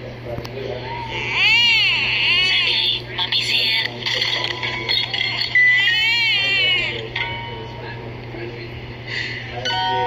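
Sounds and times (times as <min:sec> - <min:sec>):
pitch-shifted baby wails: 0:00.8 - 0:03.0, 0:05.5 - 0:07.1.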